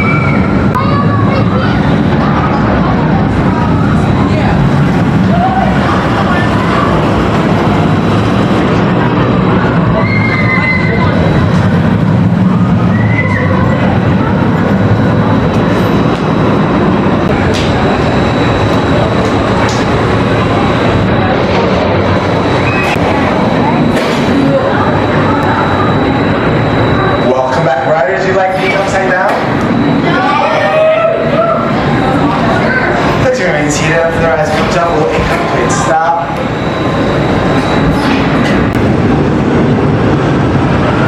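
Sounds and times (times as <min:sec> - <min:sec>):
roller coaster rolling on track: 0:00.0 - 0:41.0.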